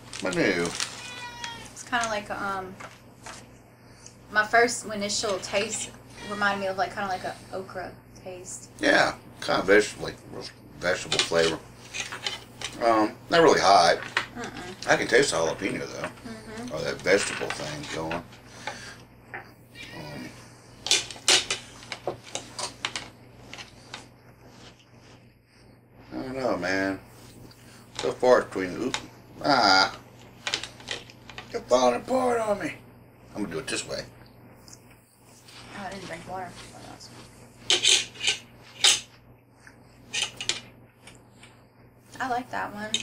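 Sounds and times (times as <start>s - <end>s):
fork scraping paper plate: 35.3s - 39.1s.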